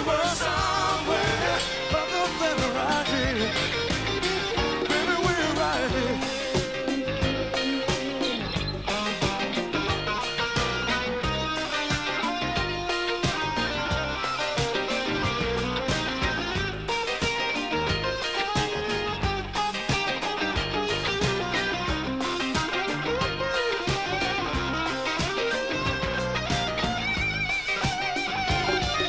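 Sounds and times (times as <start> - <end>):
drums steady beat: 0.0 - 29.0
electric guitar: 0.0 - 29.0.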